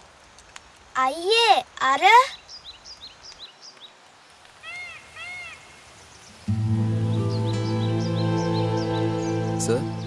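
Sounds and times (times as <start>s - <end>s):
small birds chirping: 1.6s - 10.0s
rising-and-falling bird calls: 4.6s - 10.0s
music with low chords: 6.5s - 10.0s.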